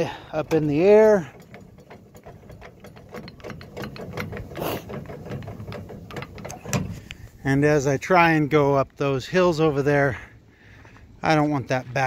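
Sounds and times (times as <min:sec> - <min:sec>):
jack gears clicking: 0:00.0 - 0:07.5.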